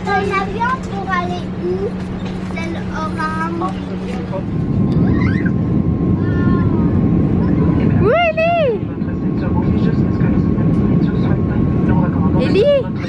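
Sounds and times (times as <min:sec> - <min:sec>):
airliner cabin rumble: 0:00.0 - 0:13.0.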